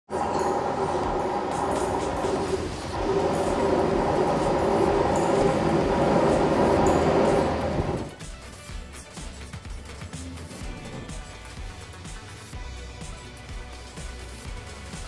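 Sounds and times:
diesel train engine droning: 0.0 - 8.2.

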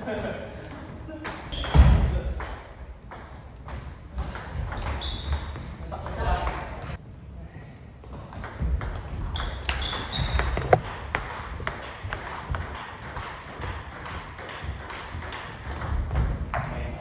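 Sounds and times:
table tennis ball clicking: 10.4 - 12.2.

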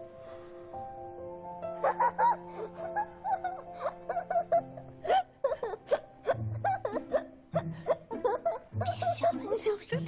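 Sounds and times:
light background music: 0.0 - 10.0
child laughing: 1.8 - 9.8.

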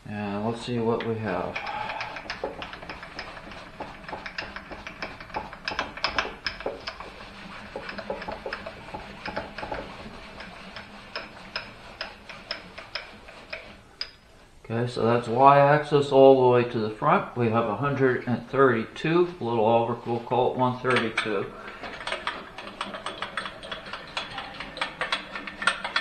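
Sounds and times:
handwheel metallic clicks: 1.0 - 7.1, 20.9 - 26.0.

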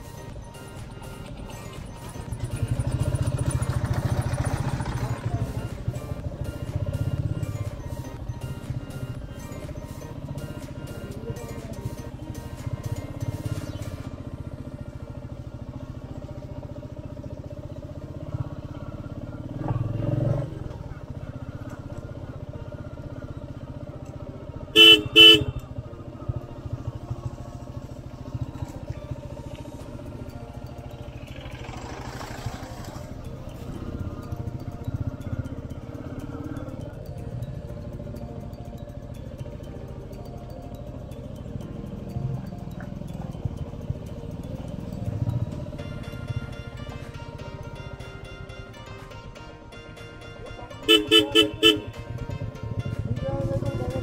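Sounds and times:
motorcycle engine running: 0.0 - 54.0
horn honks: 24.6 - 25.8, 50.6 - 54.0.

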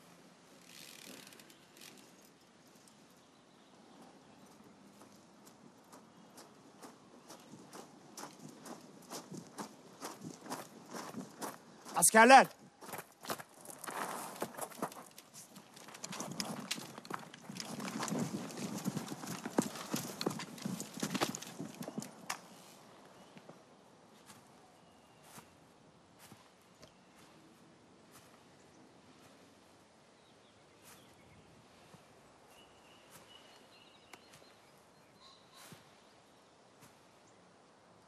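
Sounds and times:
horse hooves clip-clopping: 3.9 - 11.6, 13.0 - 22.6.

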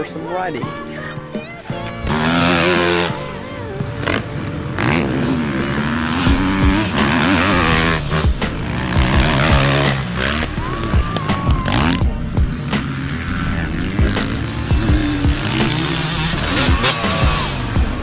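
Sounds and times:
background music: 0.0 - 18.0
motocross bike revving: 2.0 - 18.0.

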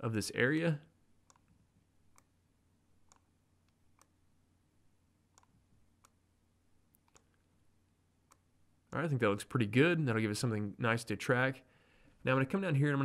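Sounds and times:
faint computer mouse clicks: 6.9 - 7.4.

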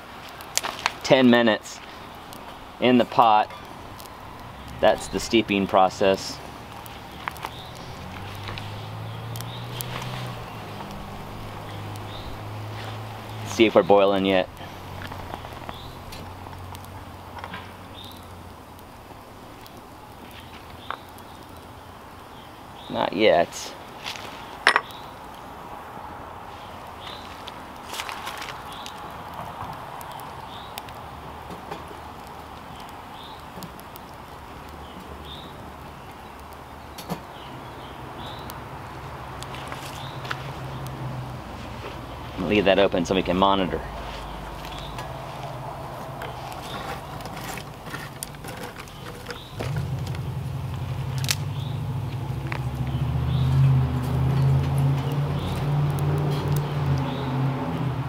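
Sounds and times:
twig fire crackling: 0.0 - 58.0.

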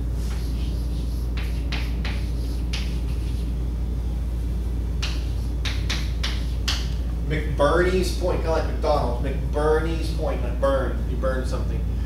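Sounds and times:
chalk scratching on blackboard: 0.2 - 3.6, 5.0 - 6.9.

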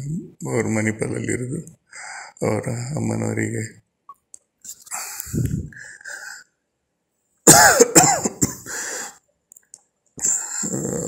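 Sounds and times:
man clearing throat: 7.5 - 8.7
man coughing loudly: 7.5 - 8.8.

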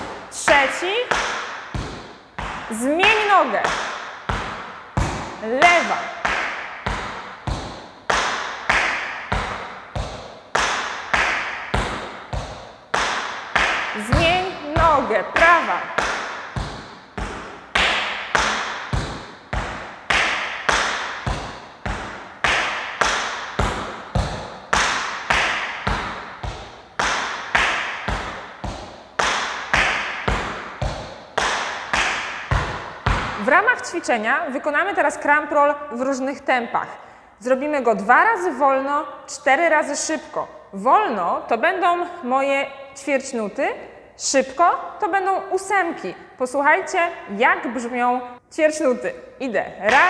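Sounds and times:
tap shoes on wooden floor: 0.0 - 34.2.

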